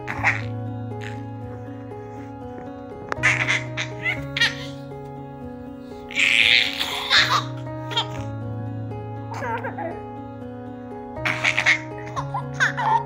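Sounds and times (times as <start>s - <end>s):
background music: 0.0s - 13.0s
baby giggling: 0.1s - 1.2s, 3.2s - 4.8s, 6.1s - 8.3s, 11.2s - 13.0s.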